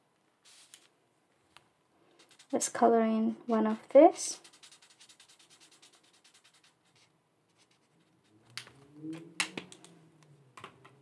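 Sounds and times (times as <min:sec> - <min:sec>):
pen scribbling on paper: 0:02.2 - 0:02.8, 0:04.1 - 0:08.2.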